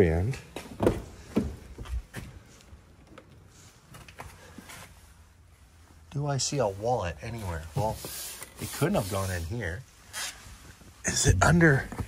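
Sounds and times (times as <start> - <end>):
faint handling knocks and rustles: 0.2 - 6.0.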